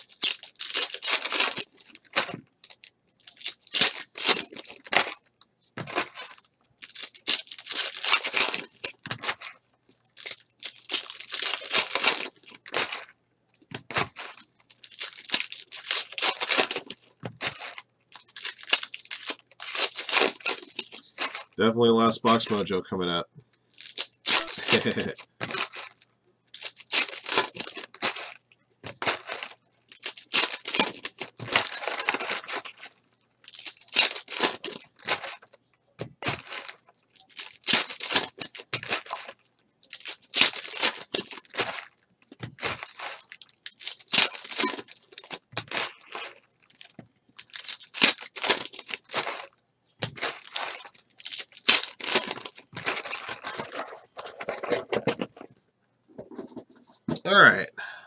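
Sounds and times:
foil wrappers crinkling and tearing: 0:00.0 - 0:21.6, 0:23.7 - 0:55.5.

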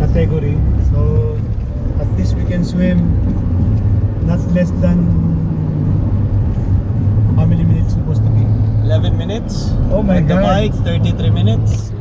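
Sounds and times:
car engine hum: 0:00.0 - 0:12.0
road noise inside car: 0:00.0 - 0:12.0.

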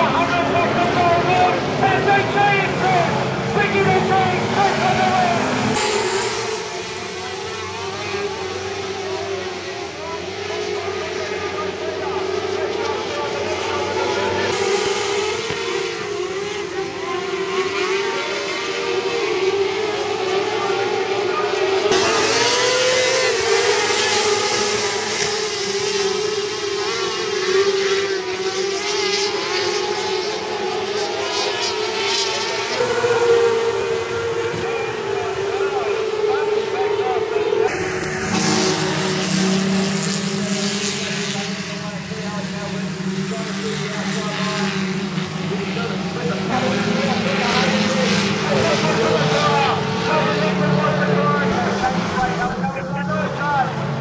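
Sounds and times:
racing car engines droning: 0:00.0 - 0:54.0.

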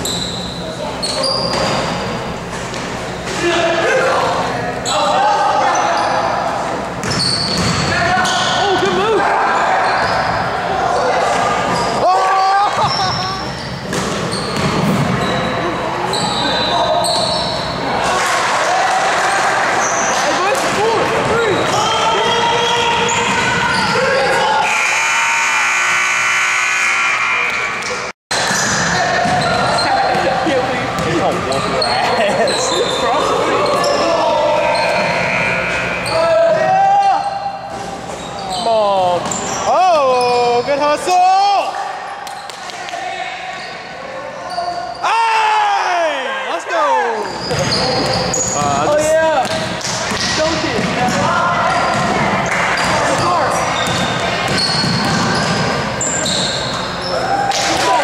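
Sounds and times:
sneakers squeaking on court: 0:00.0 - 0:03.2, 0:06.9 - 0:09.0, 0:12.8 - 0:17.8, 0:27.8 - 0:36.2, 0:47.2 - 0:57.3.

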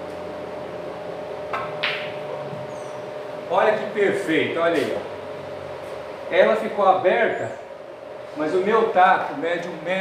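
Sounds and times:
pool balls clicking: 0:01.5 - 0:02.2
pool cue striking ball: 0:01.5 - 0:02.4.

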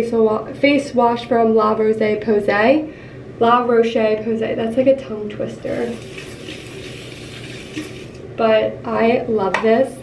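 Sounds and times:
aerosol can spraying: 0:05.7 - 0:08.2.

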